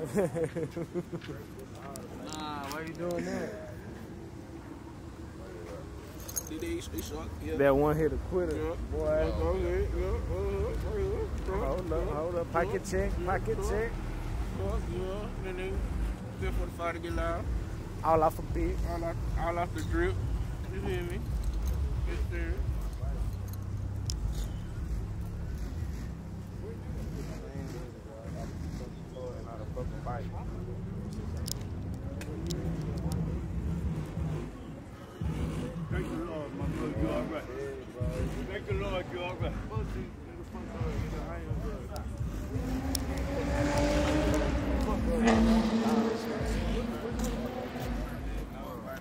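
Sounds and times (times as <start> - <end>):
people talking: 0.0 - 4.2, 5.3 - 25.4, 26.5 - 49.0
motor vehicle passing by: 6.4 - 49.0.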